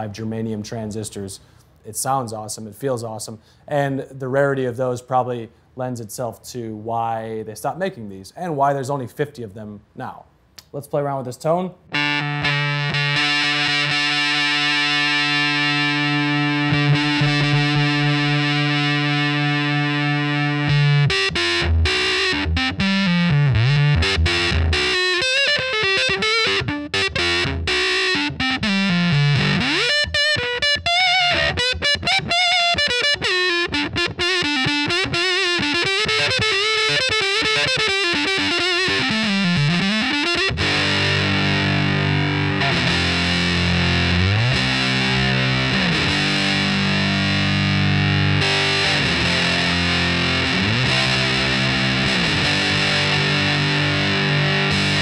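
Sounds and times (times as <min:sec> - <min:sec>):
fuzzed electric guitar: 0:11.9 - 0:55.0.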